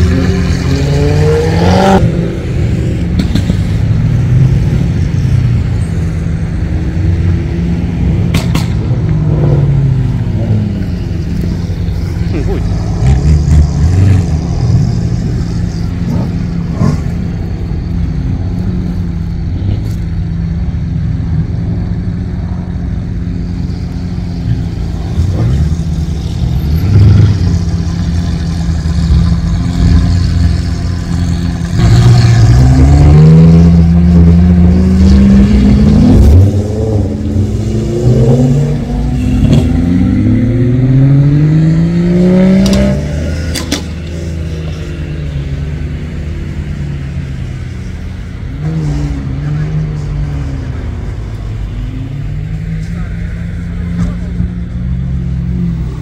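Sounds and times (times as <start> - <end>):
car engines revving and pulling away: 0.0 - 56.0
sports car engines idling: 14.3 - 32.5, 42.7 - 56.0.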